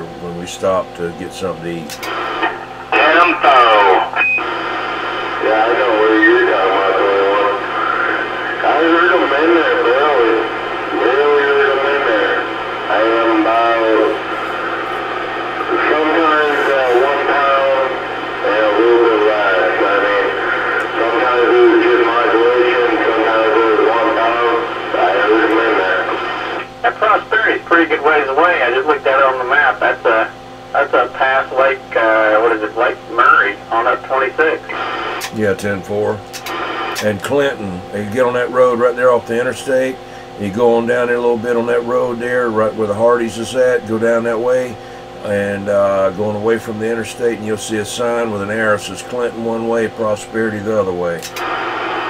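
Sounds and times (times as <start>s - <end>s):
tinny speech over radio: 0.0s - 4.2s, 5.3s - 14.8s, 15.6s - 51.5s
radio hum and static: 0.0s - 52.0s.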